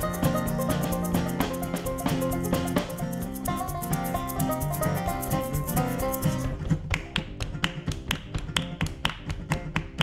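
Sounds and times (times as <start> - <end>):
bass guitar line: 0.0 - 10.0
live folk band music: 0.0 - 10.0
sharp percussion taps: 0.0 - 10.0.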